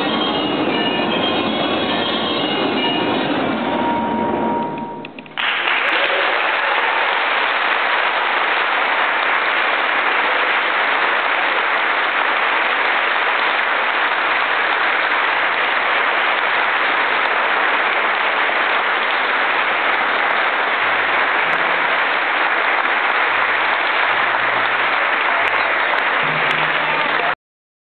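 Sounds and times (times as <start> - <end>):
audience applause: 5.3 - 27.4.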